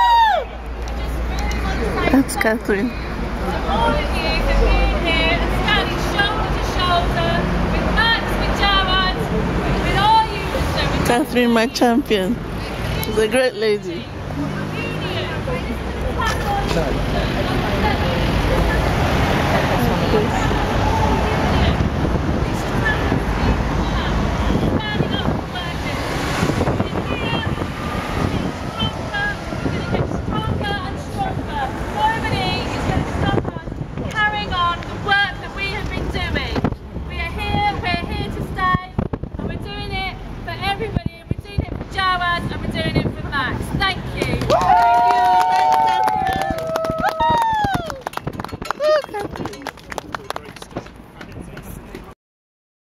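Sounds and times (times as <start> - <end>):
crowd cheering and whooping: 0.0 - 0.7, 20.3 - 21.6, 44.5 - 49.6
crowd chatter: 0.0 - 41.0, 48.0 - 52.2
wind buffeting microphone: 15.2 - 51.9
hand clapping: 44.2 - 51.7.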